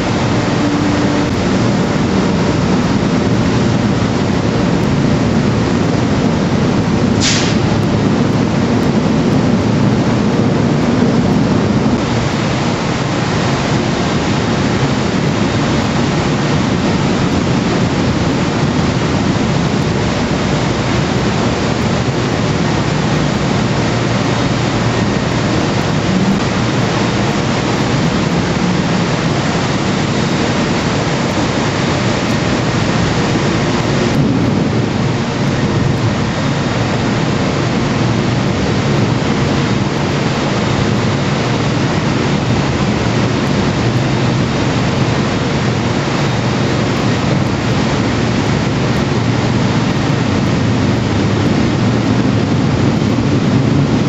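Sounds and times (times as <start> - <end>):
heavy machinery din: 0.0 - 54.0.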